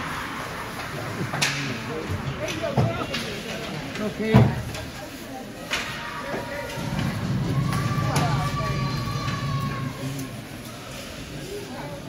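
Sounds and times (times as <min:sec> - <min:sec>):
crowd voices rumbling: 0:00.0 - 0:12.0.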